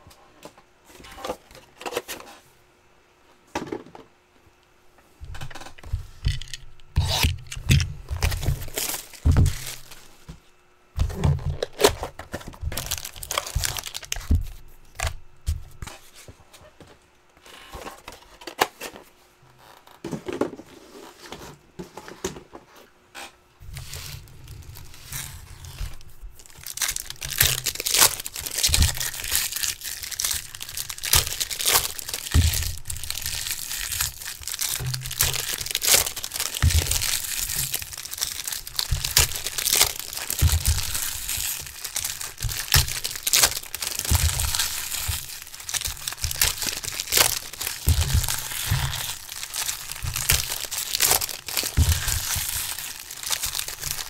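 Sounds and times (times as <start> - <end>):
foil wrappers crinkling: 5.4 - 10.3, 11.0 - 16.1, 23.7 - 54.0
foil tearing: 6.2 - 10.2, 11.1 - 15.2, 23.7 - 54.0.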